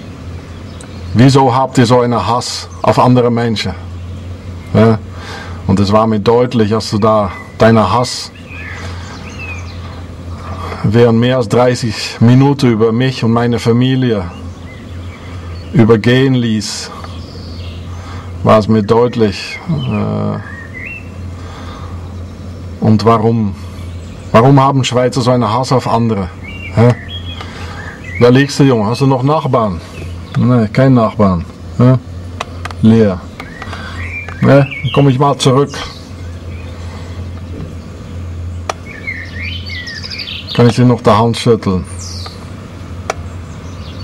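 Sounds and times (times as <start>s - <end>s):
small birds chirping: 0.0s - 44.0s
steady low hum: 0.0s - 44.0s
steady low rumble: 0.0s - 44.0s
bird whistled call: 7.3s - 7.6s, 8.3s - 10.0s, 19.5s - 21.3s, 26.4s - 28.4s, 33.4s - 35.1s, 38.8s - 40.6s.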